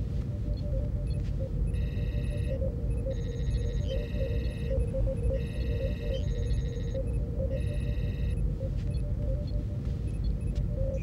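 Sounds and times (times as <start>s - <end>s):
soft electronic blips: 0.0s - 11.0s
trilling electronic beeps: 1.1s - 9.0s.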